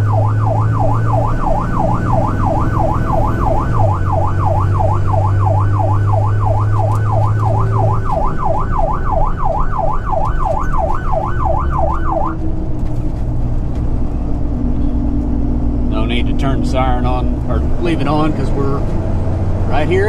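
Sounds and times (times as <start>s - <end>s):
electronic siren yelping: 0.0s - 12.5s
road noise: 0.0s - 20.0s
truck engine: 0.0s - 20.0s.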